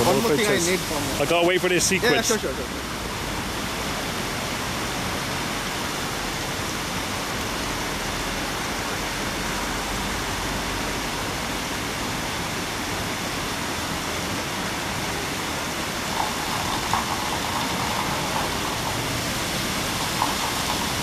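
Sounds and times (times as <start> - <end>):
fountain jets splashing: 0.0 - 21.0.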